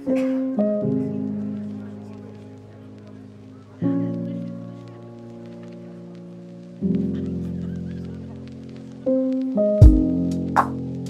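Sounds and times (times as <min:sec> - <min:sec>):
crackly clicks: 0:00.0 - 0:11.0.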